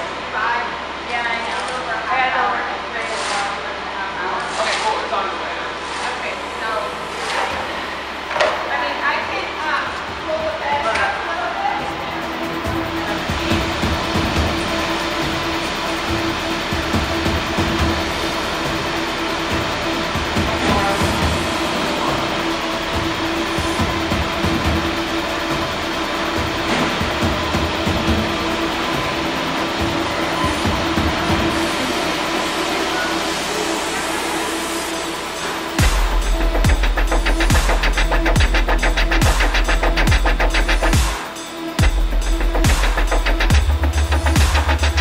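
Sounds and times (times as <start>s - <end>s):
truck engine and hydraulics running: 4.3s - 45.0s.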